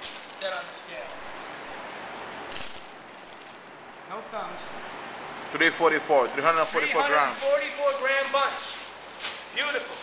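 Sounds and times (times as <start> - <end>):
rustle of flower stems: 0.0 - 1.9, 6.5 - 10.0.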